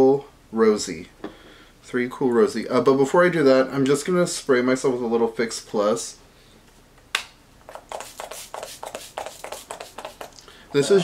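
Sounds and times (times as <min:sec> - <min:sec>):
spray bottle spritzing: 0:07.7 - 0:10.4.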